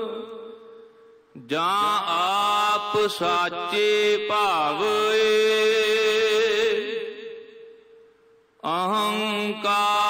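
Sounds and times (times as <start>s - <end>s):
devotional singing: 1.4s - 7.4s, 8.6s - 10.0s.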